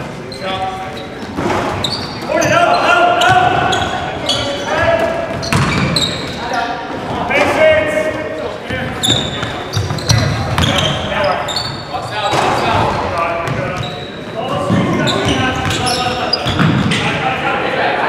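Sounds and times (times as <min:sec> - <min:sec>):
players calling out: 0:01.8 - 0:18.0
basketball bouncing on wood floor: 0:05.3 - 0:06.0.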